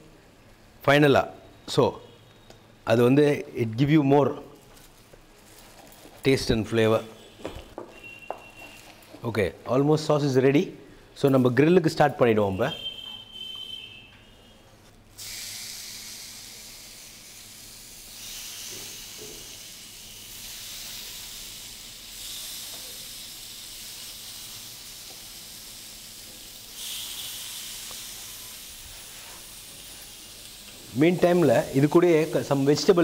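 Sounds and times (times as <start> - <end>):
chicken sizzling on grill plate: 15.2 - 33.0.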